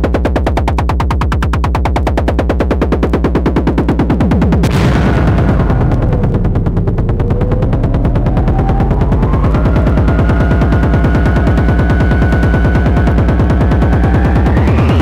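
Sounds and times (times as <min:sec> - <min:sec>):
heavy bass line: 0:00.0 - 0:15.0
rapid repeated drum hits: 0:00.0 - 0:15.0
thin rising synth tone: 0:05.5 - 0:15.0.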